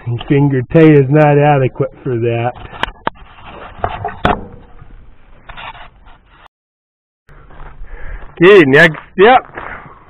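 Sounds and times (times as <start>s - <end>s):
rubbing and scraping: 2.3s - 6.5s.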